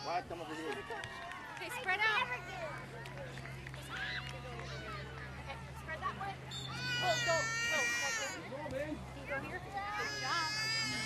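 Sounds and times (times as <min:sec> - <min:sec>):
children and adults talking: 0:00.0 - 0:11.0.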